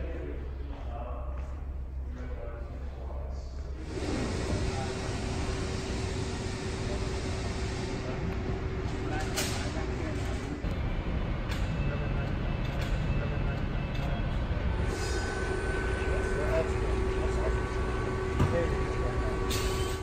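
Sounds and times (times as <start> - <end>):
distant voices: 0.0 - 20.0
steady hum: 0.0 - 20.0.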